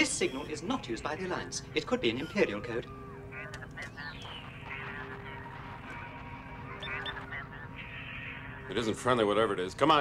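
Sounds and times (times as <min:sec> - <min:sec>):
garbled electronic warbling chatter: 0:00.0 - 0:10.0
steady electronic hum: 0:00.0 - 0:10.0.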